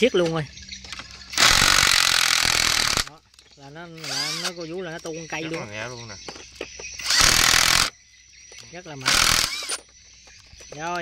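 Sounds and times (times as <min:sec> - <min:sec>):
impact driver hammering rattle: 0:00.9 - 0:03.2, 0:04.0 - 0:04.6, 0:06.2 - 0:08.0, 0:09.0 - 0:10.4.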